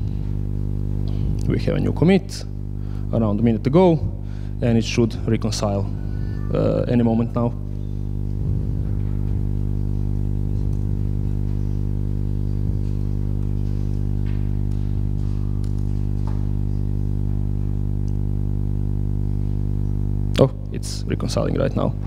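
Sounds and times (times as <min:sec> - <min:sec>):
electrical hum: 0:00.0 - 0:22.0.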